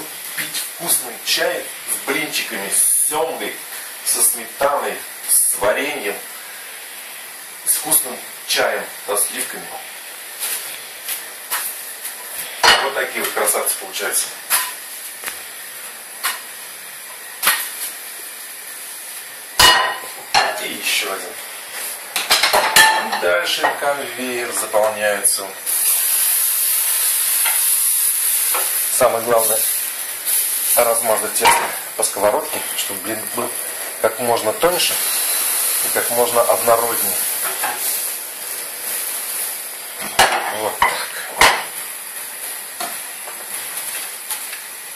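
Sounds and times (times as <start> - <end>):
crepes frying hiss: 0.0 - 44.9.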